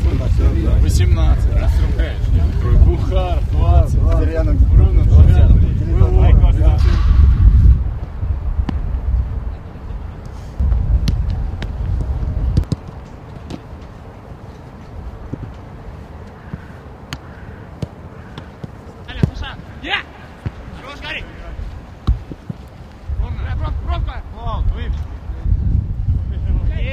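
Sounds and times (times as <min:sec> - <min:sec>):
wind buffeting microphone: 0:00.0 - 0:17.5, 0:20.5 - 0:26.9
footballs being kicked: 0:10.6 - 0:14.0, 0:16.5 - 0:19.7, 0:20.4 - 0:20.8, 0:21.6 - 0:23.0
distant shouts: 0:16.3 - 0:21.6.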